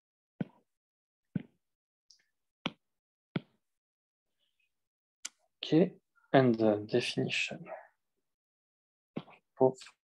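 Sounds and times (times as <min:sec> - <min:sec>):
stylus tapping on glass screen: 0:01.4 - 0:01.6, 0:03.4 - 0:03.6.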